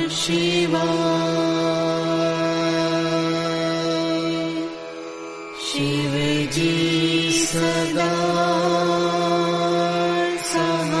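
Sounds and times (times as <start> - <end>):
mantra chanting: 0.0 - 4.8, 5.6 - 11.0
instrumental drone: 0.0 - 11.0.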